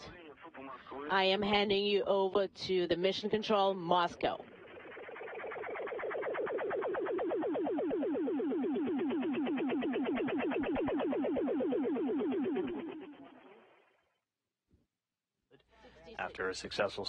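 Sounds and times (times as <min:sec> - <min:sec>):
electronic warbling tone: 0:00.0 - 0:14.2.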